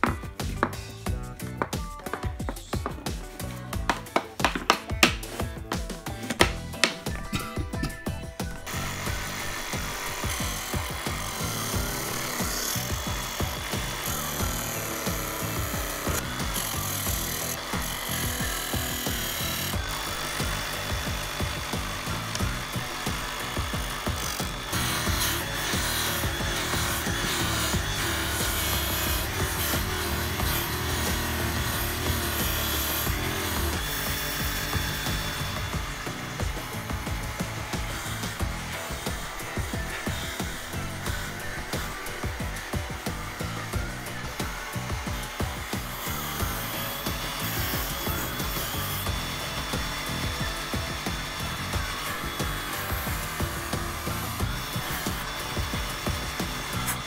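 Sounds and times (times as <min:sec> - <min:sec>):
background music: 0:00.0 - 0:57.0
small electric sanding disc: 0:00.0 - 0:57.0
wood rubbing against sander: 0:00.0 - 0:57.0.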